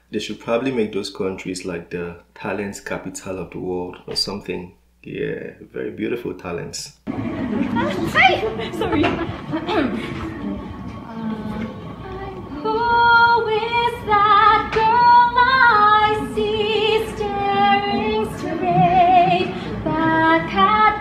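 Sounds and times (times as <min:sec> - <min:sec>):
young woman singing: 0:11.0 - 0:21.0.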